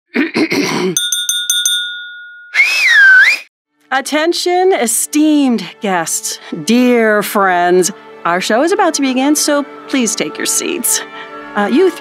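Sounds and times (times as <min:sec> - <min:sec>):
chime ringing: 0:01.0 - 0:02.7
whistle-like tone sliding in pitch: 0:02.5 - 0:03.5.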